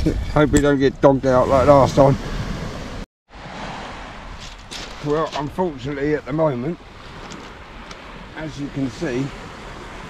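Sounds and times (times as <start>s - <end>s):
sea on a shingle beach: 0.0s - 10.0s
wind: 0.0s - 10.0s
faint crunches: 4.4s - 5.6s.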